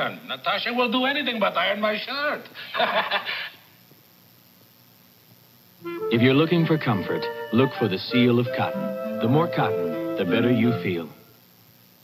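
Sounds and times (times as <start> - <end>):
faint background hiss: 0.0 - 12.0
person speaking: 5.8 - 11.2.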